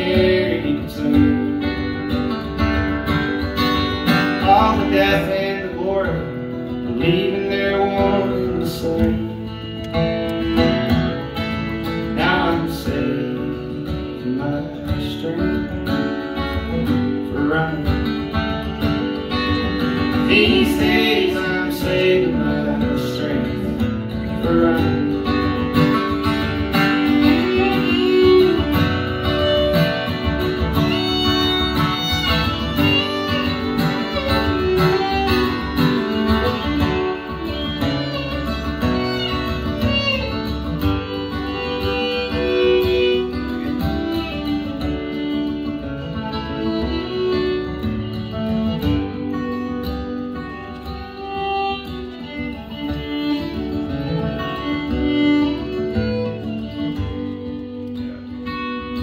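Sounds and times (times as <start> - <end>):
fiddle playing: 0.0 - 14.8, 15.5 - 59.0
acoustic guitar playing: 0.0 - 59.0.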